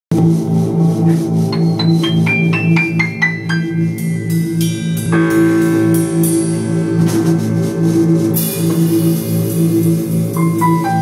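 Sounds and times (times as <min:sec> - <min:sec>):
pulsing synthesizer: 0:00.1 - 0:11.0
cymbal wash: 0:00.4 - 0:11.0
drum kit hits: 0:01.0 - 0:11.0.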